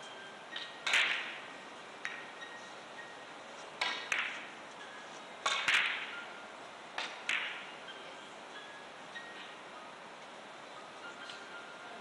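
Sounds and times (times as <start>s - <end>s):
billiard balls clicking: 7.0s - 7.7s.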